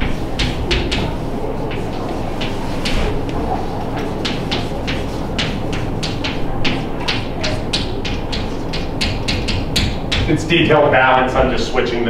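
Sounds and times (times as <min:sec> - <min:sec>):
chalk writing on blackboard: 0:00.0 - 0:10.4
low room hum: 0:00.0 - 0:12.0.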